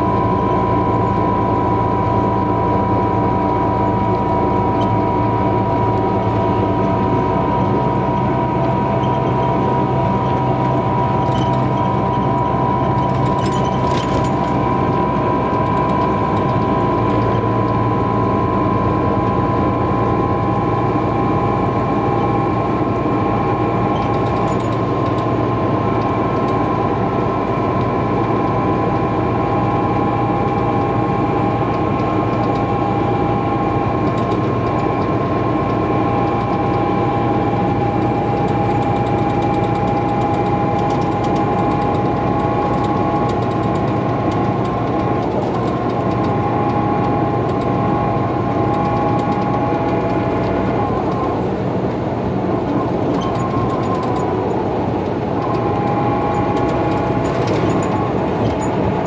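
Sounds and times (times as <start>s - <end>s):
low engine drone: 0.0s - 59.0s
steady high whine: 0.0s - 59.0s
tyre and road noise: 0.0s - 59.0s.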